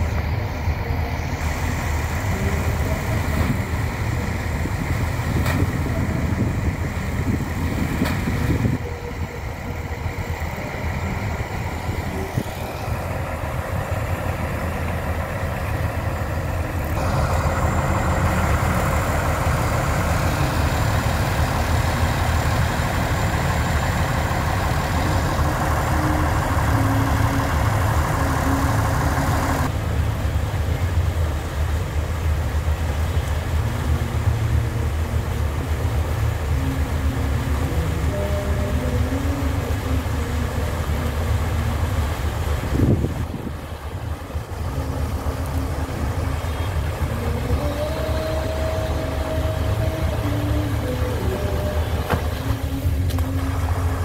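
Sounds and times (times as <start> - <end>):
boat engine droning: 0.0 - 54.0
harsh engine layer: 0.0 - 54.0.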